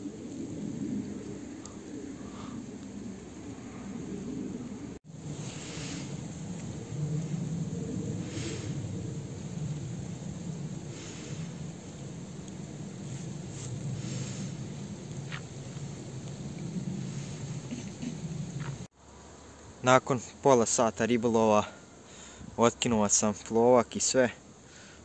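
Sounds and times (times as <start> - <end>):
wind buffeting microphone: 0.0 - 18.9.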